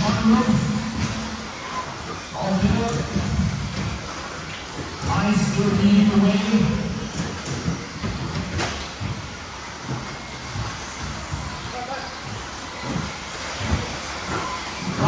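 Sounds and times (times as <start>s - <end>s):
rc car motors and tyres running: 0.0s - 15.0s.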